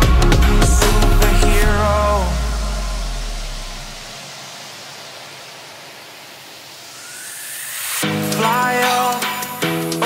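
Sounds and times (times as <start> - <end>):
steady rushing hiss: 0.5 - 10.0.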